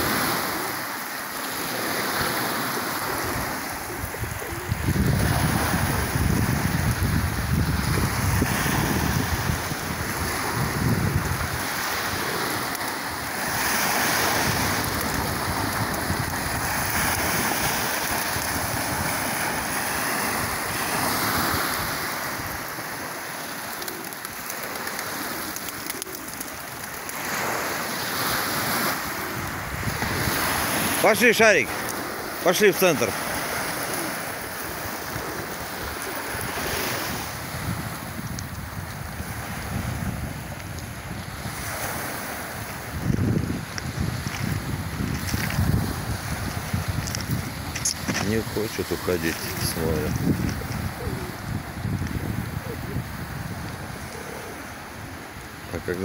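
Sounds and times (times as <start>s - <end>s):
waves breaking on pebble beach: 0.0s - 56.0s
wind buffeting microphone: 3.1s - 23.0s, 28.2s - 31.0s, 33.3s - 54.4s.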